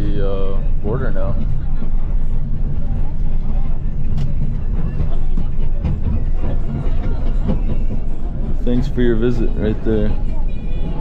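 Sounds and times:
bus engine and road rumble: 0.0s - 11.0s.

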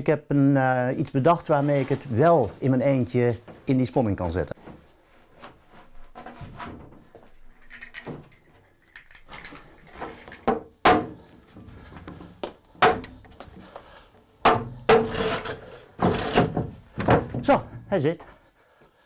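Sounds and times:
board scraping: 1.5s - 2.8s, 14.9s - 16.8s
wooden board knocking and thumping: 10.5s - 11.2s, 16.0s - 17.5s.

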